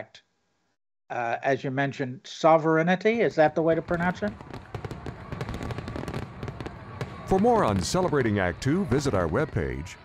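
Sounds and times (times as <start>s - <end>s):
fireworks crackling: 3.6s - 10.0s.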